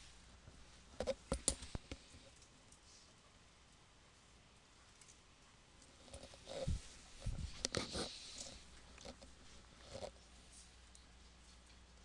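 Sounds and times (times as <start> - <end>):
quiet room hum: 0.0 - 12.0.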